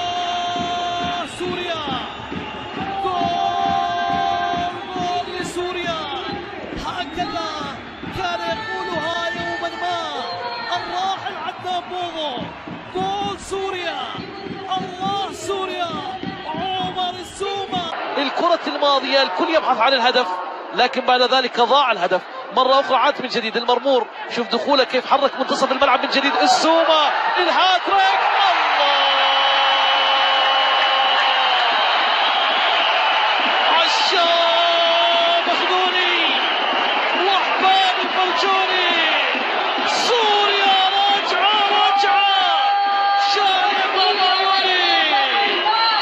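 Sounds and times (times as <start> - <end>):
commentator shouting: 0.0 - 29.8, 37.0 - 46.0
stadium crowd roar: 0.0 - 46.0.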